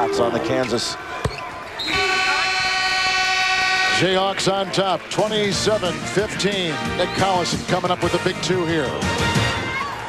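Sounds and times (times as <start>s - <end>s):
arena horn blast: 1.9s - 4.1s.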